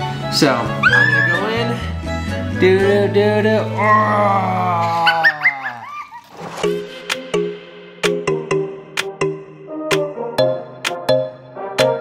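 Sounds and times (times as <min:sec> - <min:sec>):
plucky synth music: 0:06.8 - 0:12.0.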